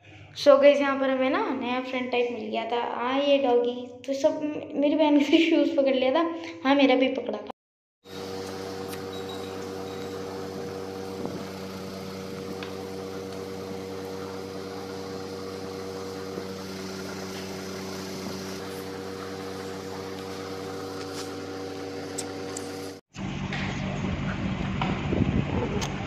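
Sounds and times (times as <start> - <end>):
steady machine hum: 8.1 - 26.0.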